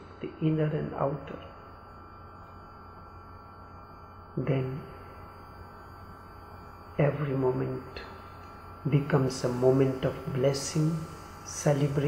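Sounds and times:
faint background music drone: 0.0s - 12.0s
low hum: 0.0s - 12.0s.

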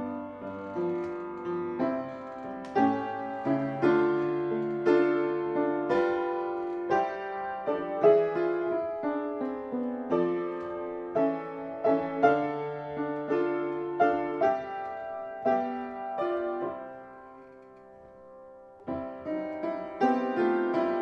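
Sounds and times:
solo piano playing hymn: 0.0s - 21.0s.

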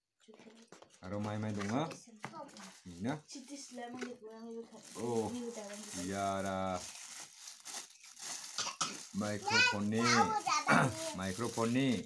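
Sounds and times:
plastic wrapping crinkling: 0.3s - 12.0s.

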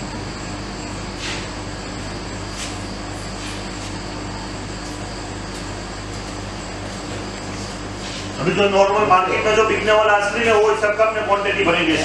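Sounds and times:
ice cream machine humming: 0.0s - 12.0s.

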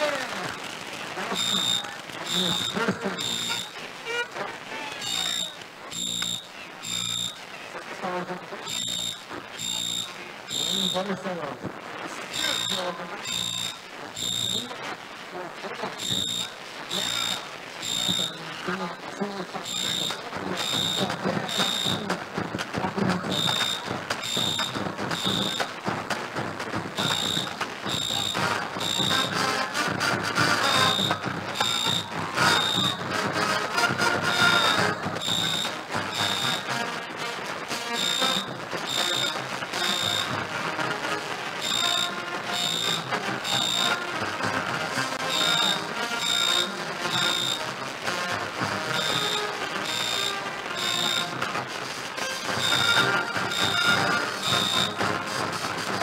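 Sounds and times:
marching band music: 1.1s - 4.3s, 19.6s - 56.0s
high electronic beeps: 1.2s - 3.8s, 5.0s - 7.5s, 8.6s - 11.2s, 12.3s - 14.8s, 15.9s - 18.9s, 19.6s - 22.1s, 23.1s - 25.9s, 27.0s - 29.5s, 30.4s - 36.8s, 37.8s - 40.4s, 41.6s - 44.1s, 45.2s - 47.7s, 48.9s - 51.4s, 52.3s - 55.1s.

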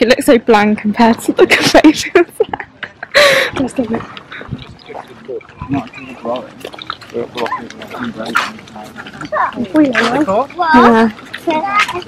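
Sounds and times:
people talking while walking: 0.0s - 12.0s.

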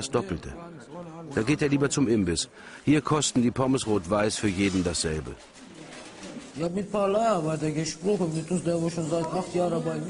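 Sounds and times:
man speaking: 0.0s - 5.4s, 6.6s - 10.0s
low background noise: 0.0s - 10.0s.

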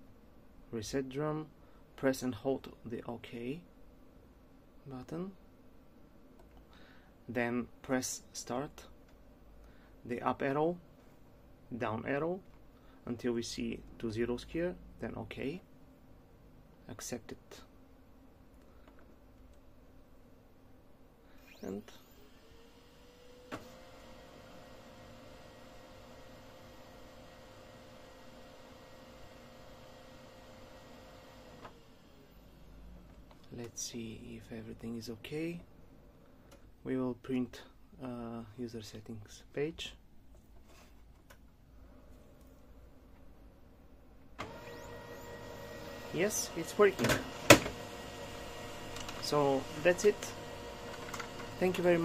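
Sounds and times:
printer rising whine: 21.4s - 32.6s, 44.4s - 52.0s
faint steady printer hum: 21.5s - 33.0s, 44.4s - 52.0s
printer click: 44.4s - 47.8s, 48.8s - 51.7s.

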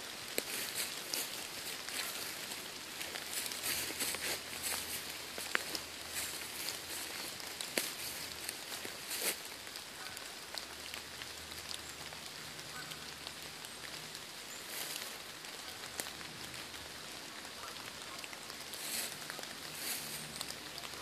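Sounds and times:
footsteps through dry leaves: 0.0s - 11.8s, 12.7s - 16.7s, 17.4s - 21.0s.

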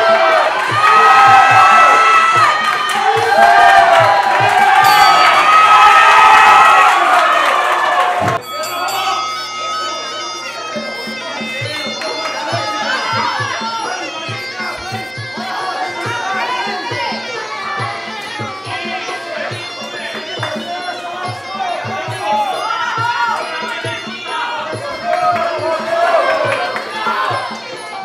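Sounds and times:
shrill reedy oboe melody: 0.0s - 7.6s, 8.3s - 28.0s
steady drum beats: 0.0s - 9.6s, 10.3s - 28.0s
crowd shouting and cheering: 0.0s - 28.0s.

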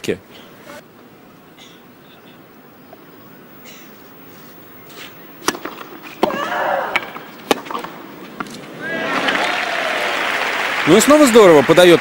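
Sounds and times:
racket hitting tennis ball: 4.9s - 9.3s
player's long cry: 6.3s - 7.0s
crowd applause and cheering: 8.7s - 12.0s.

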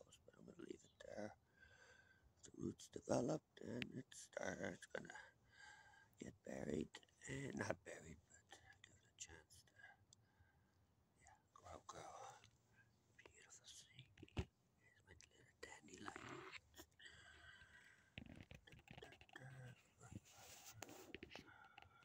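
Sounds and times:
faint breathy whispers: 0.0s - 10.6s, 11.2s - 22.0s.

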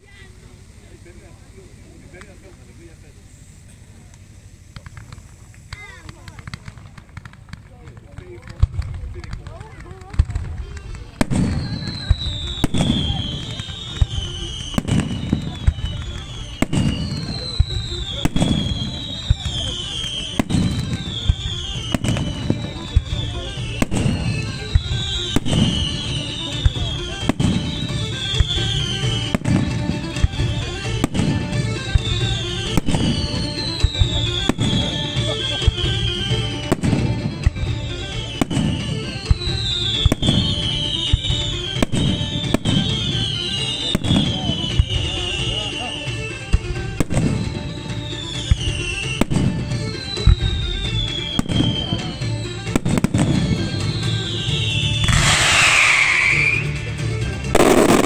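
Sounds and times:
fireworks bangs: 0.0s - 58.0s
music: 9.4s - 58.0s
high falling whistle: 53.7s - 56.8s.

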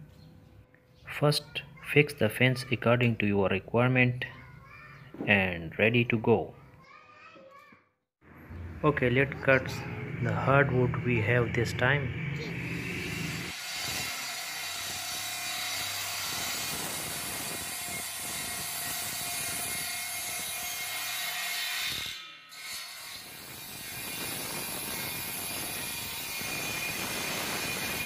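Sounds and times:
table saw whining: 9.1s - 28.0s.

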